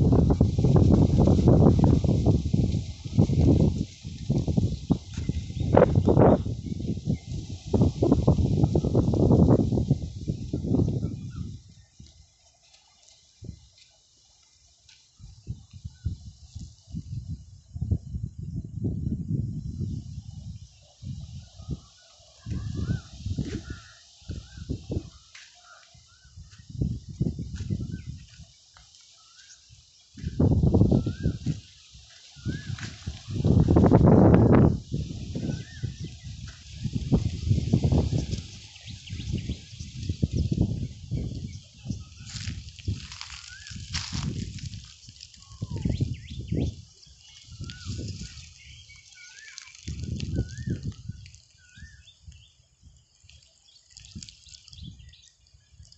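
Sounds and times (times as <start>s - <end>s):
wind buffeting microphone: 0.0s - 12.2s, 15.2s - 25.4s, 26.0s - 28.6s, 29.7s - 55.9s
small birds chirping: 19.6s - 55.9s.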